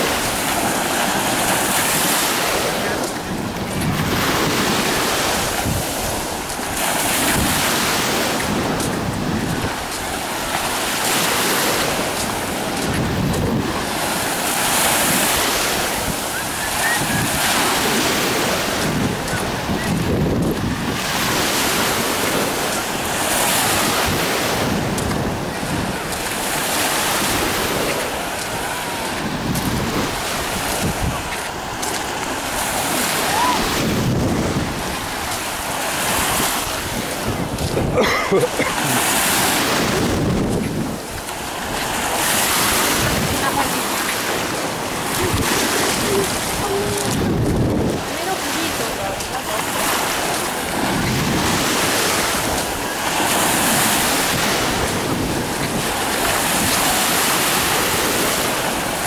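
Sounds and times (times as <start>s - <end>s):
waves breaking on sandy shore: 0.0s - 59.0s
wind buffeting microphone: 0.0s - 59.0s.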